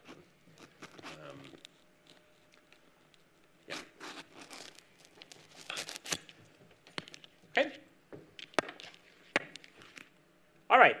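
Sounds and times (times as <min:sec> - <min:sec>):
rustling and crinkling handling: 0:00.0 - 0:07.6.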